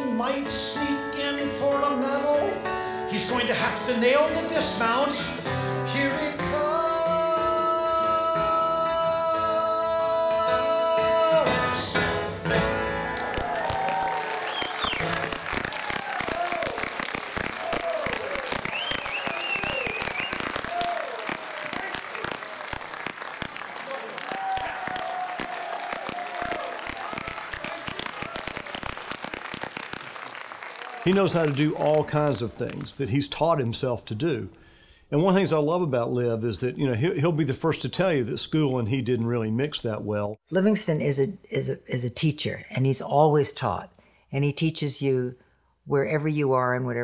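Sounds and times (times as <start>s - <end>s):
audience cheering: 13.0s - 33.0s
audience applauding: 13.0s - 33.2s.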